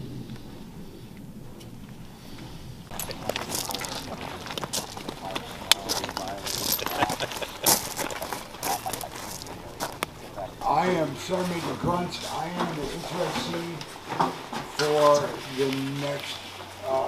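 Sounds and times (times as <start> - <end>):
boot laces rustling and clicking: 2.9 - 10.2.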